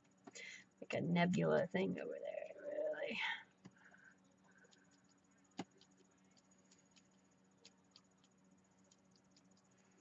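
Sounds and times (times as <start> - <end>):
low steady hum: 0.0 - 10.0
tiny ticks: 4.6 - 10.0.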